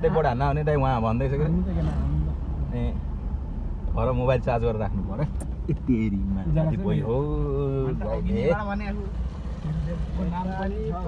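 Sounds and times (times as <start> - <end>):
car driving on rough dirt road: 0.0 - 11.0.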